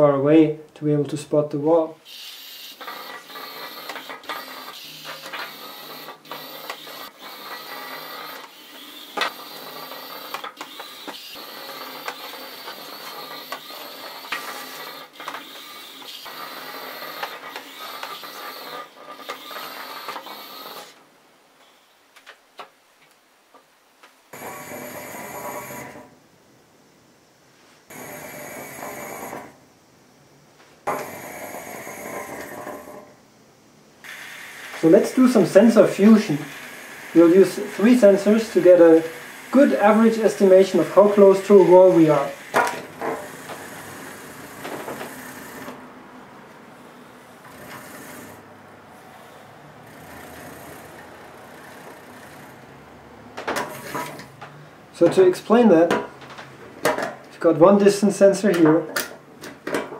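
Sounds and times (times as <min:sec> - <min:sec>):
small electric motors whining: 0:02.1 - 0:21.0, 0:34.0 - 0:45.8.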